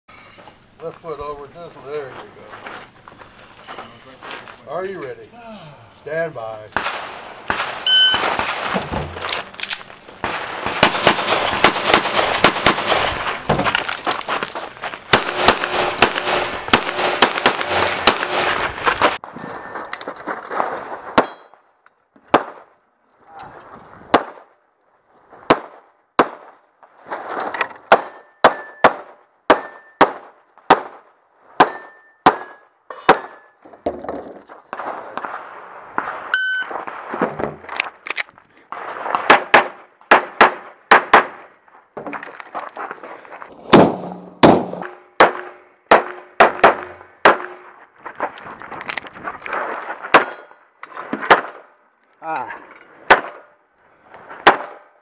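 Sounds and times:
constant noise: 0:00.1 - 0:28.8, 0:29.5 - 0:55.0
pistol shots: 0:06.7 - 0:13.4, 0:15.1 - 0:18.7, 0:22.3 - 0:22.7, 0:24.1 - 0:24.5, 0:25.5 - 0:26.5, 0:27.9 - 0:31.0, 0:31.6 - 0:33.5, 0:38.7 - 0:41.4, 0:43.7 - 0:47.6, 0:51.2 - 0:51.7, 0:53.1 - 0:53.5, 0:54.4 - 0:54.9.

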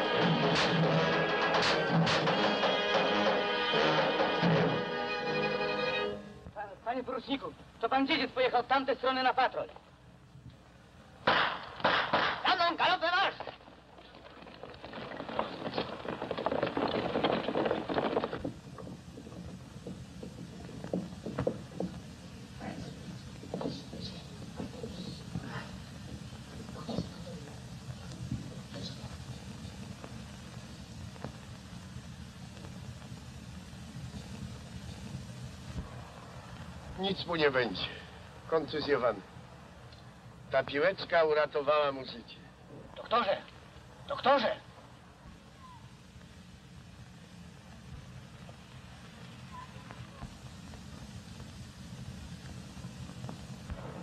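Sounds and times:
film soundtrack hiss: 0:00.0 - 0:54.0
faint gunshot pops: 0:11.2 - 0:12.5.

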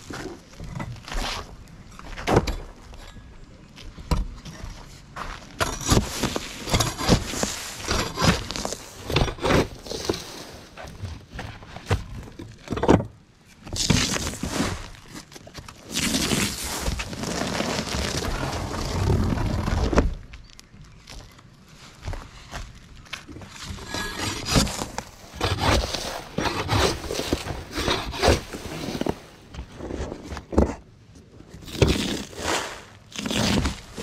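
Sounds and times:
roofing fork scraping gravel: 0:04.8 - 0:11.9, 0:13.7 - 0:20.2, 0:20.9 - 0:30.7, 0:31.6 - 0:34.0
roofing sheet tearing and dragging: 0:05.8 - 0:10.6, 0:13.7 - 0:15.1, 0:15.7 - 0:20.2, 0:23.5 - 0:30.1, 0:31.6 - 0:34.0.

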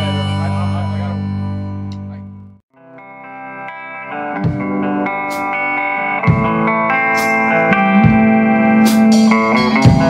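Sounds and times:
band music: 0:00.0 - 0:10.0
electric guitar chord with chorus: 0:02.8 - 0:10.0.

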